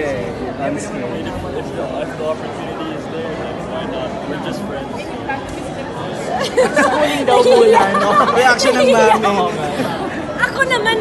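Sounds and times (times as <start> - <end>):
background chatter: 0.0 - 11.0
several voices talking: 0.0 - 11.0.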